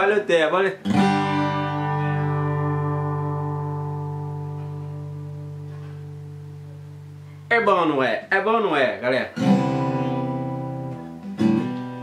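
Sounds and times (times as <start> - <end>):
acoustic guitar chord ringing: 0.8 - 8.4, 9.2 - 12.0.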